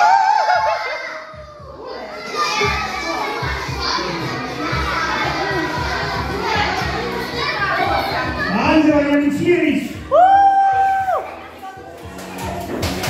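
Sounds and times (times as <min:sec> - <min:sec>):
children talking and calling out: 0:00.0 - 0:09.3, 0:09.9 - 0:12.7
background music with beat: 0:09.3 - 0:13.0.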